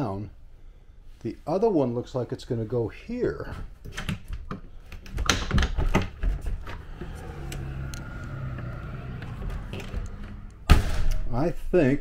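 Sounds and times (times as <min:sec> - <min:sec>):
door latch clicking and rattling: 0:03.9 - 0:06.3.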